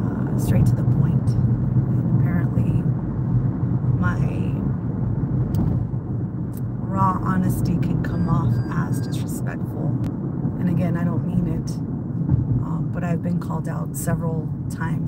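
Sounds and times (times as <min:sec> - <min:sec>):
woman speaking: 0:00.0 - 0:02.9, 0:04.0 - 0:04.7, 0:06.8 - 0:11.8, 0:12.6 - 0:15.0
car driving rumble from inside: 0:00.0 - 0:15.0.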